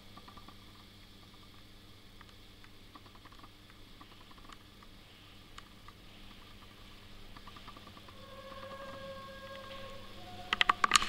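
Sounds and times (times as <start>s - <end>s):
low hum and hiss: 0.0s - 11.0s
faint held tone: 8.0s - 11.0s.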